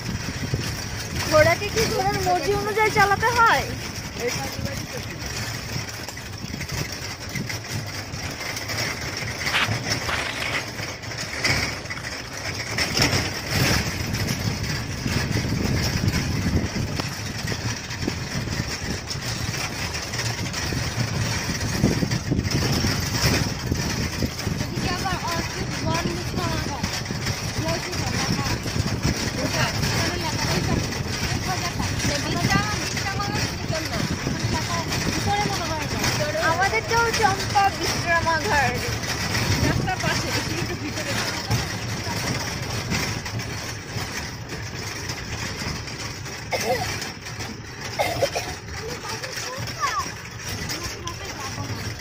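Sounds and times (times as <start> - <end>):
vehicle rumble: 0.0 - 52.0
indistinct voices: 0.2 - 52.0.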